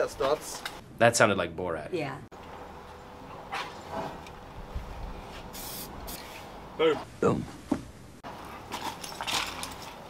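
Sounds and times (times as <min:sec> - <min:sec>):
aerosol spray can hissing: 0:05.5 - 0:06.2.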